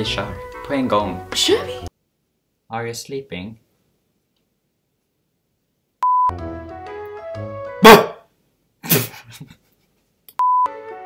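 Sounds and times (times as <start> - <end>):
short steady beep: 6.0 - 6.3.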